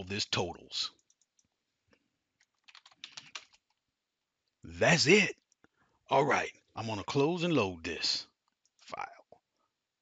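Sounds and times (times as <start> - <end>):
keyboard typing: 0.9 - 1.4, 2.4 - 3.8.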